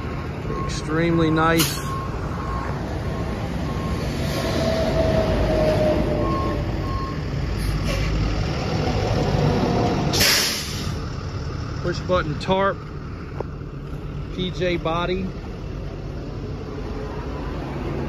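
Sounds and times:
diesel truck engine idling: 0.0 - 4.1, 5.6 - 18.0
loud hiss: 10.2 - 11.0.

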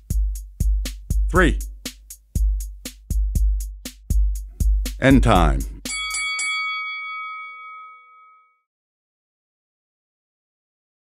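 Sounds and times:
boxing bell ringing: 5.8 - 8.7.

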